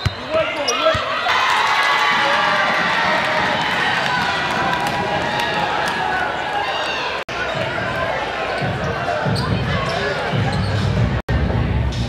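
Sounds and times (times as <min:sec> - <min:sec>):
crowd chatter echoing: 0:00.0 - 0:12.0.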